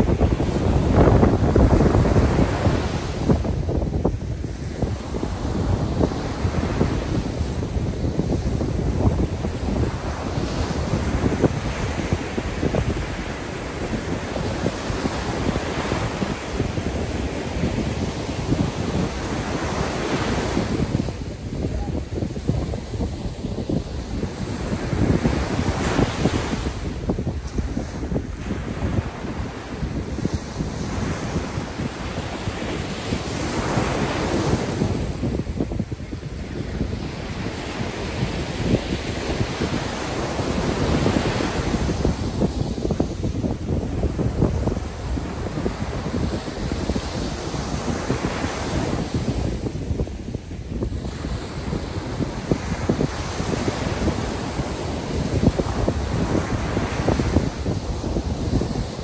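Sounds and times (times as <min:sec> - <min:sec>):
ocean surf breaking on beach: 0:00.0 - 0:59.0
wind buffeting microphone: 0:00.0 - 0:59.0.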